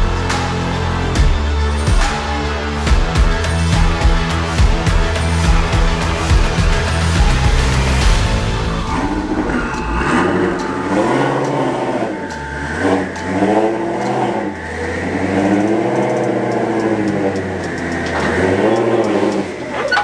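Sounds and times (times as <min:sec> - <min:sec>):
car engine revving: 0:00.0 - 0:20.0.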